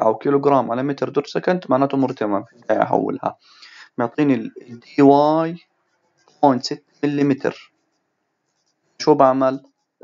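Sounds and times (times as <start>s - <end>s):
man speaking: 0.0s - 5.6s, 6.4s - 7.6s, 9.0s - 9.6s.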